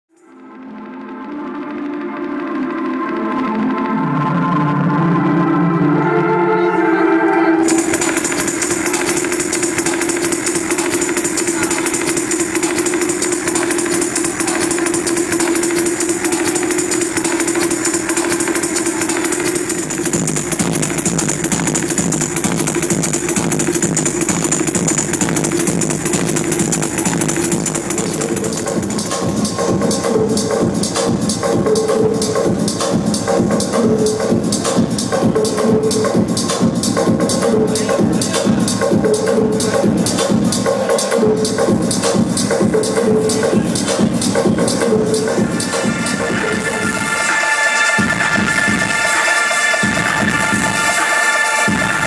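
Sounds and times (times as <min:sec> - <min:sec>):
sustained synth chords: 0:00.2 - 0:34.6, 0:42.6 - 0:52.0
pulsing low synth part: 0:02.4 - 0:31.4, 0:44.0 - 0:52.0
fast hissing percussion: 0:07.7 - 0:31.4.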